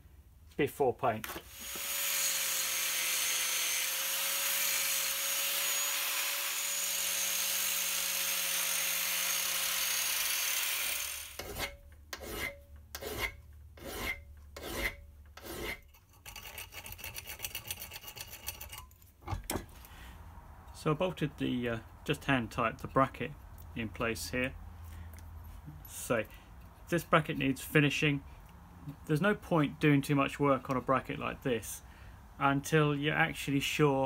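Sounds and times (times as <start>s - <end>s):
angle grinder whining on steel: 1.3s - 11.7s
hand file strokes: 10.8s - 18.9s.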